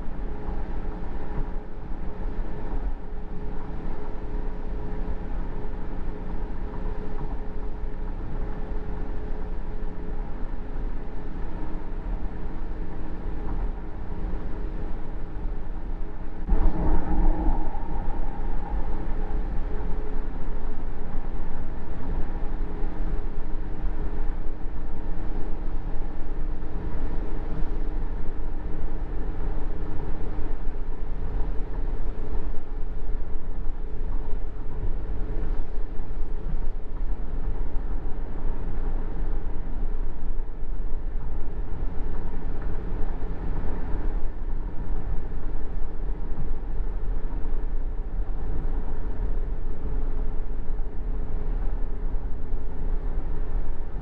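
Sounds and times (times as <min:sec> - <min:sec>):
faint hum: 0:00.0 - 0:54.0.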